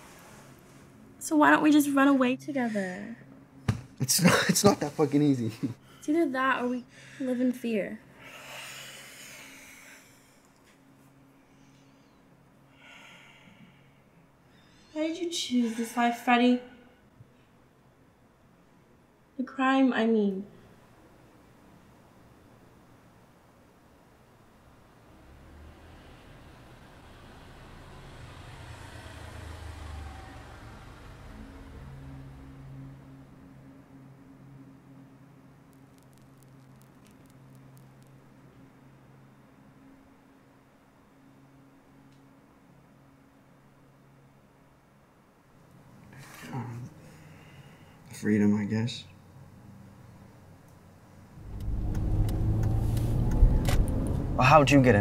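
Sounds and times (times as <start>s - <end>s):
low steady hum: 0.0s - 55.0s
passing vehicle rumble: 24.7s - 34.6s, 51.1s - 55.0s.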